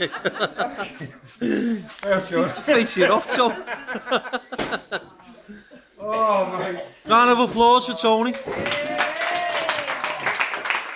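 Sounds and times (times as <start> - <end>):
people laughing: 0.0 - 7.0.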